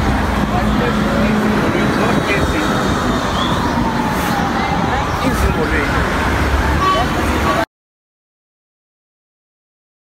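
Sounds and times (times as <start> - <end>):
road traffic: 0.0 - 7.7.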